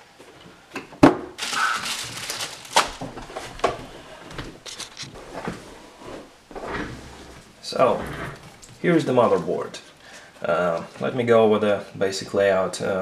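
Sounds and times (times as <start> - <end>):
plastic bag crinkling: 1.4 - 6.3.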